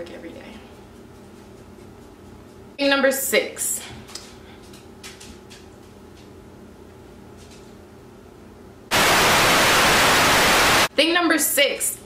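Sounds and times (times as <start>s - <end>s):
loud static hiss: 8.9s - 10.9s.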